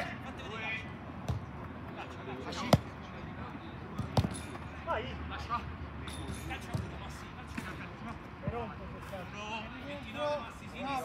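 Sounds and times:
faint players' voices: 0.0s - 11.0s.

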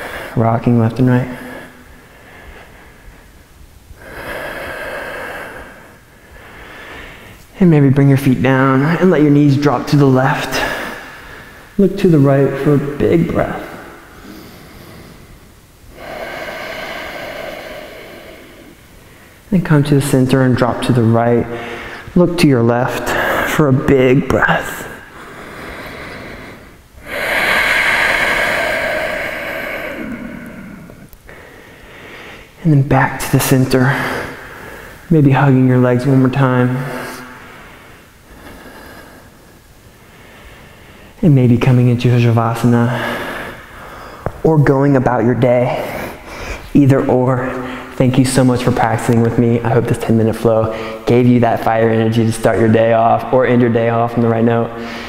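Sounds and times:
quiet breathing: 0.0s - 55.0s
man breathing out noisily: 4.0s - 7.4s, 13.6s - 19.5s, 24.9s - 32.6s, 43.0s - 44.4s
man exhaling: 13.6s - 19.4s, 24.8s - 32.6s.

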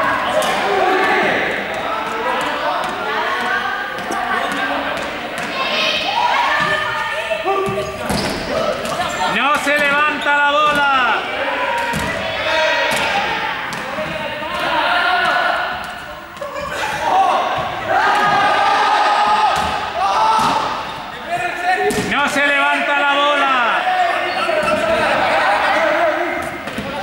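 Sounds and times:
voices shouting: 0.0s - 27.0s.

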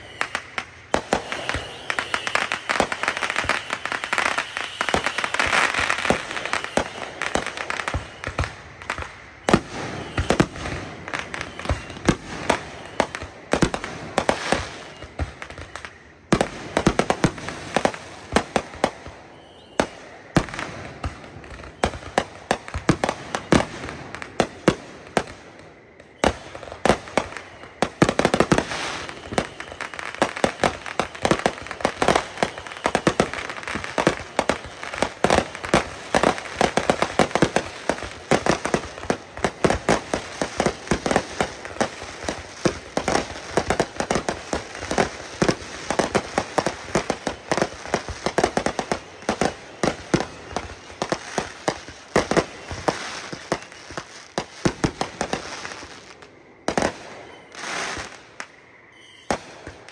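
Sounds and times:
fireworks bangs and crackling: 0.0s - 59.9s.

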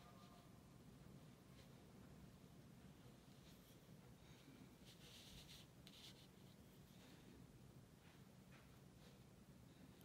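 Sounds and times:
ink brush scratching on paper: 4.8s - 7.1s.

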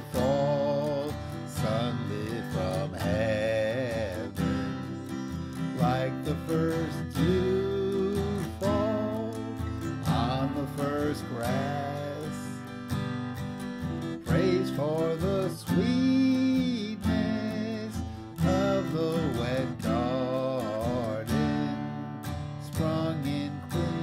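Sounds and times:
man singing: 0.0s - 13.0s, 14.0s - 24.0s
acoustic guitar strumming: 0.0s - 24.0s.

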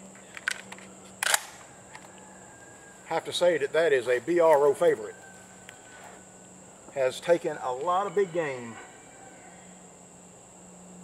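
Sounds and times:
shotgun action metallic clicks: 0.3s - 2.1s.

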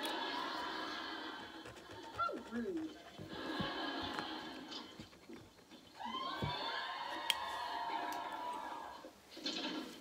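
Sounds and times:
held pitched television sound: 0.0s - 10.0s.

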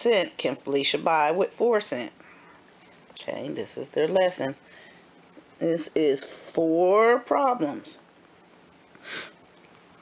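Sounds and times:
short sniff: 9.0s - 9.4s.

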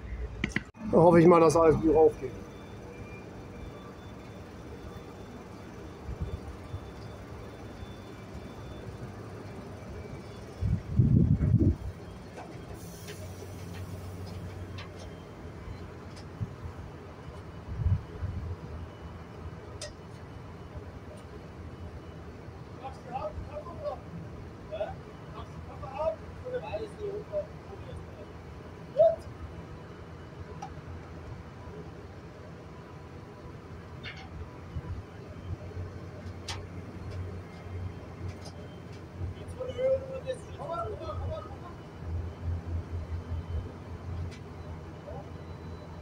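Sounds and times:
tractor diesel engine running: 0.0s - 46.0s.

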